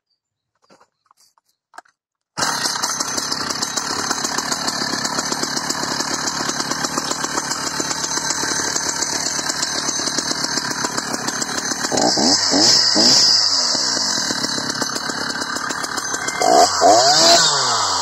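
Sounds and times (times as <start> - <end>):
chainsaw running steadily: 2.4 - 18.0.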